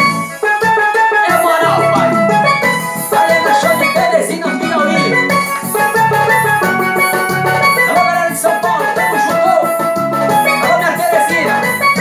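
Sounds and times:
drum and bass accompaniment: 0:00.0 - 0:12.0
electronic keyboard melody: 0:00.0 - 0:12.0.

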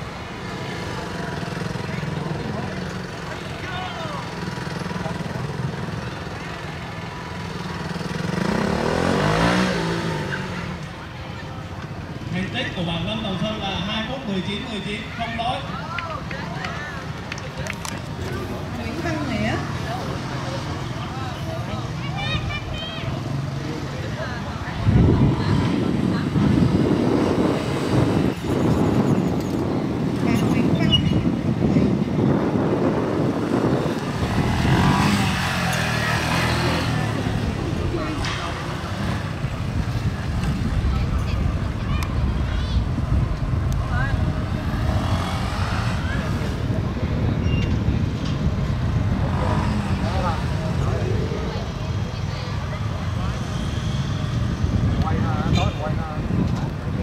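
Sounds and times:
people's voices: 0:00.0 - 0:57.0
motorcycle engine revving: 0:04.3 - 0:10.8, 0:32.2 - 0:41.7, 0:43.1 - 0:47.0, 0:47.7 - 0:52.0.

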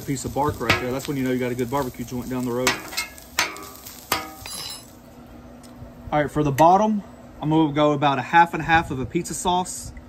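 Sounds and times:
metal spatula striking griddle: 0:00.6 - 0:01.0, 0:02.6 - 0:04.8.

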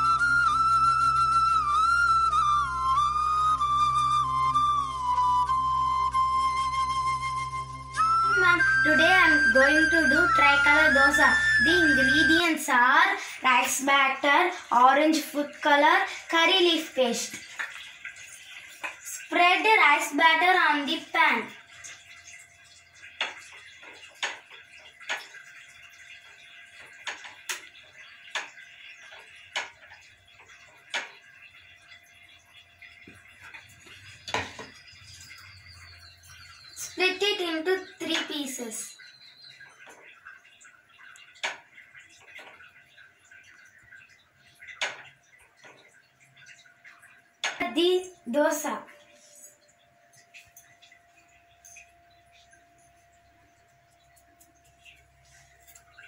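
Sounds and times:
person speaking: 0:08.4 - 0:17.4, 0:47.6 - 0:49.0.

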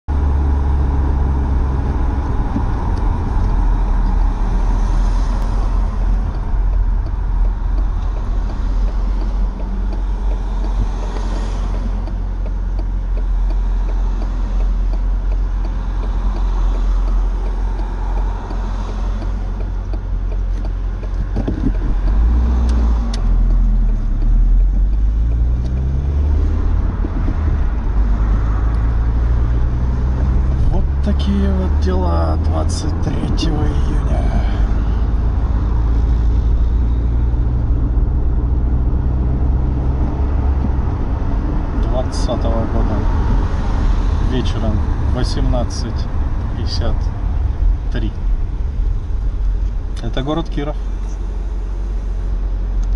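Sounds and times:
road rumble: 0:00.0 - 0:52.9
car engine accelerating: 0:00.1 - 0:52.9.

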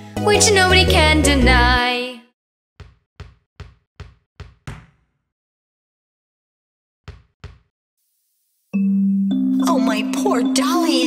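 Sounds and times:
children's song: 0:00.2 - 0:02.3, 0:09.5 - 0:11.0.

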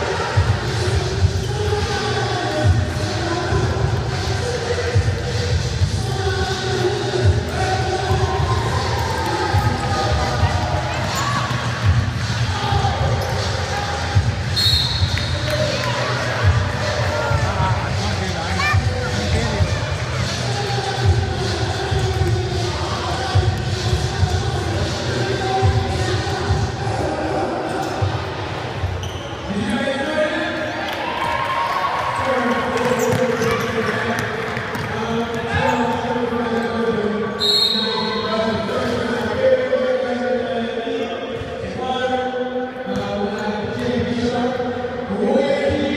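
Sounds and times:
voices in echoing hall: 0:00.0 - 0:45.9.

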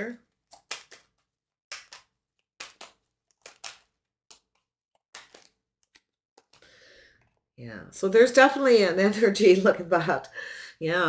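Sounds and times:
cards shuffling: 0:00.3 - 0:07.4.

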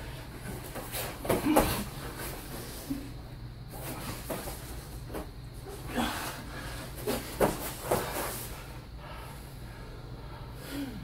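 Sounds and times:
fabric rustling and bodies shifting: 0:00.1 - 0:08.8
bodies thumping on mat: 0:00.4 - 0:02.7, 0:07.0 - 0:08.6.

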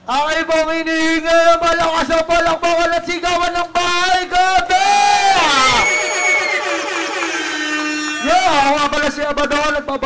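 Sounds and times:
man shouting into a microphone: 0:00.0 - 0:05.9, 0:08.2 - 0:10.0
steady held electronic tones: 0:05.7 - 0:08.9
electronic sliding sound effect: 0:05.8 - 0:08.8.

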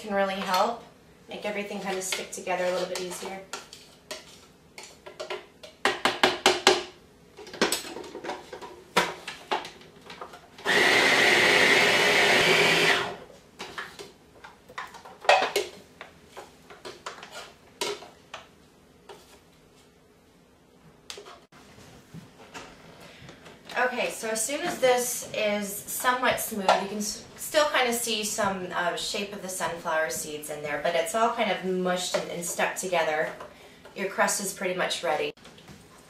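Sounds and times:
food processor running: 0:10.6 - 0:13.2.

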